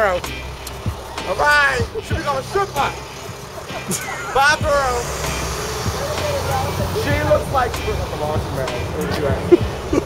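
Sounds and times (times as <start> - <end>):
faint voices: 0.0 - 10.0
vehicle engine rumbling: 0.0 - 10.0.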